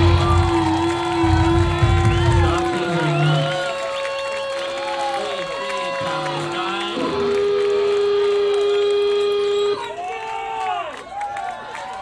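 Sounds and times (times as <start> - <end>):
electric guitar long note: 0.0 - 9.9
crowd shouting and whooping: 0.0 - 12.0.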